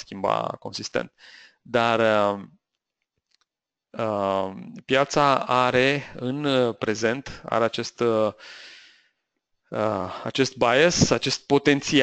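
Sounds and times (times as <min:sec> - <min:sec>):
man speaking: 0:00.0 - 0:02.5, 0:04.0 - 0:08.5, 0:09.7 - 0:12.0.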